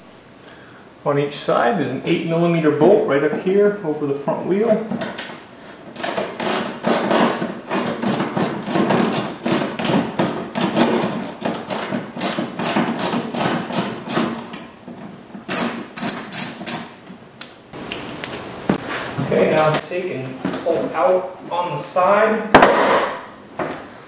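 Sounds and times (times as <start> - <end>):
ratchet clicking: 6.0 - 14.6, 15.5 - 17.0.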